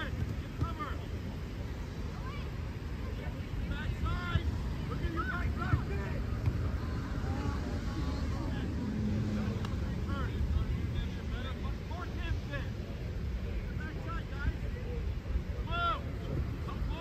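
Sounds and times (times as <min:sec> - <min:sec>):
distant shouts and calls: 0:00.0 - 0:17.0.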